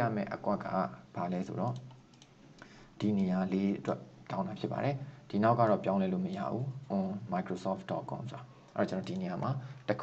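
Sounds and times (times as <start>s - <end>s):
man speaking: 0.0s - 1.9s, 3.0s - 10.0s
computer keys or mouse clicks: 1.6s - 2.4s, 8.7s - 9.4s.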